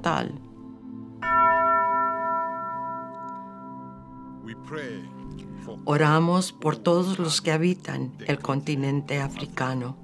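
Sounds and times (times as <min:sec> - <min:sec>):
tubular bell ringing: 0:01.2 - 0:05.2.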